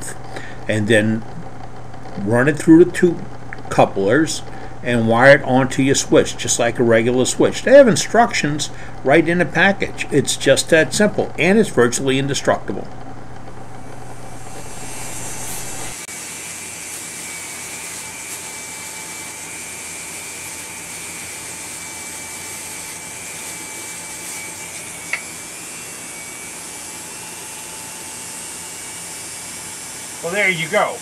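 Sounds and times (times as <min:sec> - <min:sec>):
motor grinder whining: 0:13.0 - 0:31.0.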